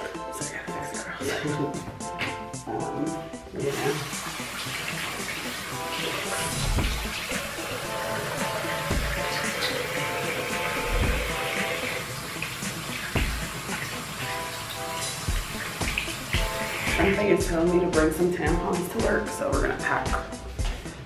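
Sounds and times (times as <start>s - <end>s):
background music with low beat: 0.0s - 21.0s
tap water running into sink: 3.6s - 17.4s.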